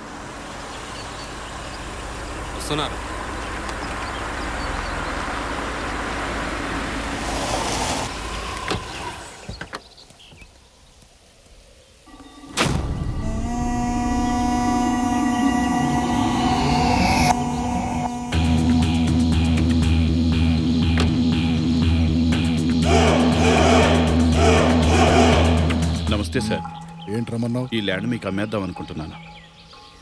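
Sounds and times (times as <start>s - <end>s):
cars driving over dirt track: 0.0s - 9.9s
sharp hit: 12.1s - 17.4s
droning film score: 12.1s - 30.0s.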